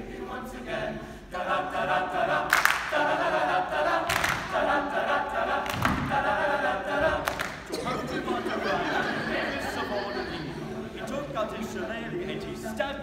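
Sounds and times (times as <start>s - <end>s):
male choir singing a cappella: 0.0s - 13.0s.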